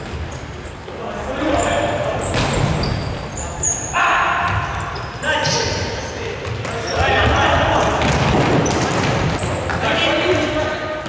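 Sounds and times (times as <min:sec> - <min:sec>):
sneakers squeaking on floor: 0:00.0 - 0:11.0
players calling out: 0:00.7 - 0:11.0.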